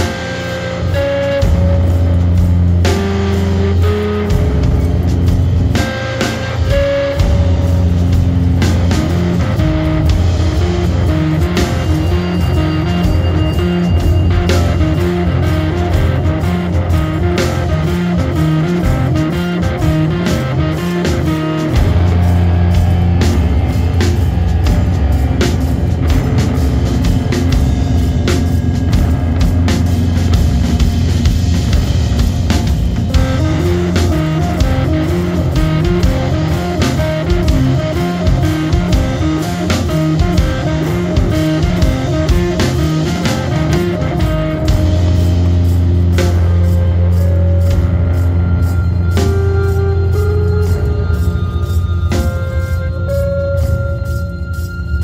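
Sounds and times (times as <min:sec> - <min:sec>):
doom metal band playing: 0:00.0 - 0:55.0.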